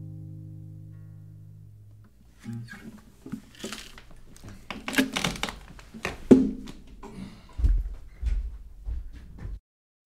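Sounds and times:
guitar handling knocks and clicks: 1.9s - 7.0s.

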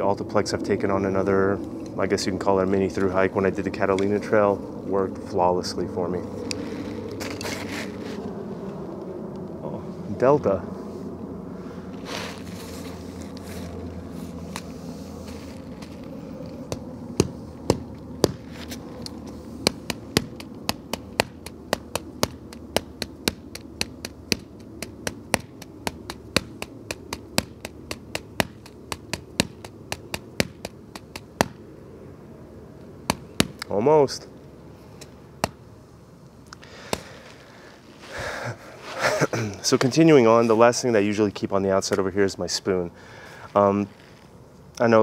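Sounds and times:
jet airliner passing overhead: 0.0s - 27.0s, 31.6s - 35.9s.

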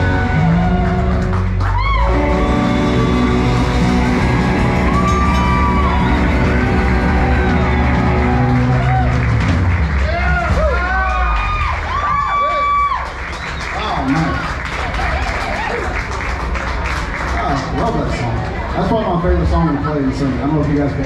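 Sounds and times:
electric guitar: 0.0s - 10.3s
bass guitar: 0.0s - 12.5s
drums: 0.0s - 14.4s.

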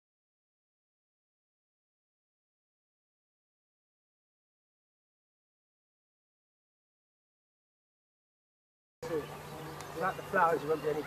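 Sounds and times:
people talking: 9.0s - 11.0s.

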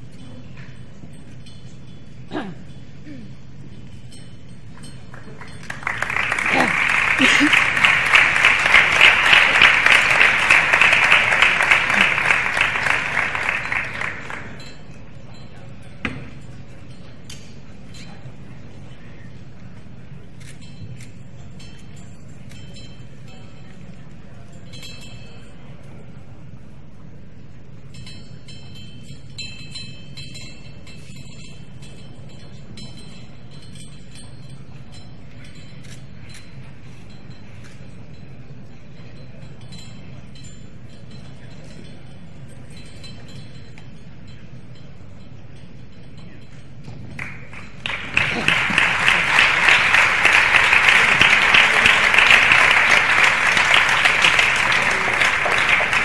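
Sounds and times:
faint murmur in a hall: 0.0s - 56.0s
audience applause: 5.2s - 14.6s, 47.2s - 56.0s.

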